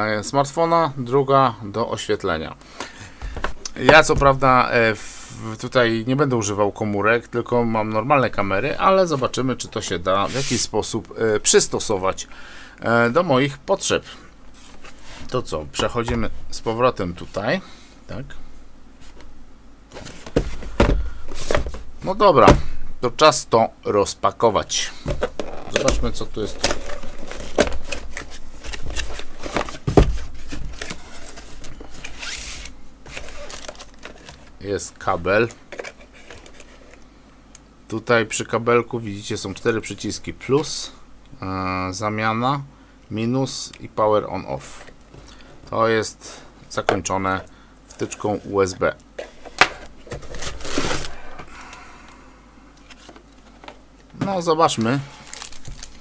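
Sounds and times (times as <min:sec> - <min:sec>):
plastic and cardboard rustling: 0:10.1 - 0:10.8, 0:14.5 - 0:17.5, 0:19.9 - 0:22.7, 0:25.0 - 0:37.0, 0:48.0 - 0:51.5, 0:52.8 - 0:56.0
packaging hissing rustle: 0:10.2 - 0:10.8, 0:25.1 - 0:34.6, 0:54.7 - 0:56.0.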